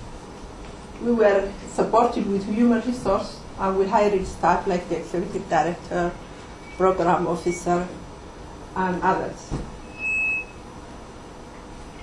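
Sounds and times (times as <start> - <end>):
short electronic beep: 6.6 - 7.7, 9.8 - 10.6.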